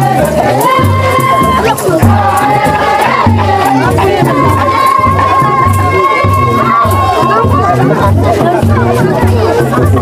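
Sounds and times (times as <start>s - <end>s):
crowd singing and shouting: 0.0s - 10.0s
drum beating steady rhythm: 0.0s - 10.0s.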